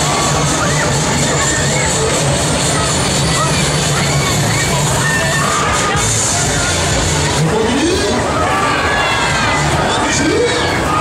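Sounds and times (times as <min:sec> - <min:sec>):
crowd voices: 0:00.0 - 0:11.0
pulsing bass music: 0:00.0 - 0:11.0.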